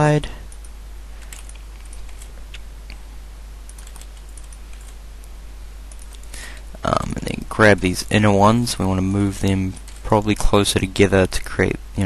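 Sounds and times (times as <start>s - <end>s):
low electrical hum: 0.0s - 12.0s
keyboard and mouse clicks: 0.5s - 3.0s, 3.7s - 6.3s.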